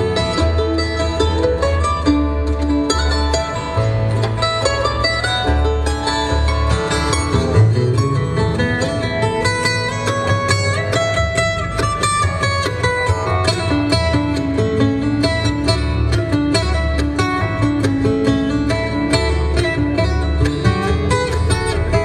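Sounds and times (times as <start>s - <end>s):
acoustic guitar: 0.0s - 22.0s
mandolin: 0.0s - 22.0s
upright bass: 0.0s - 22.0s.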